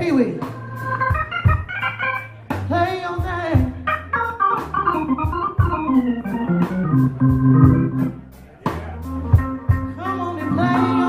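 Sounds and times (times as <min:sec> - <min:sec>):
held keyboard chords: 0:00.0 - 0:11.0
live blues band playing: 0:00.0 - 0:11.0.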